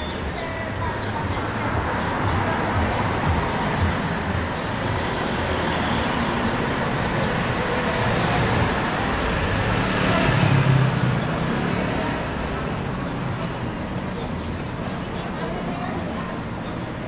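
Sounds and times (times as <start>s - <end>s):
street traffic rumble and hiss: 0.0s - 17.0s.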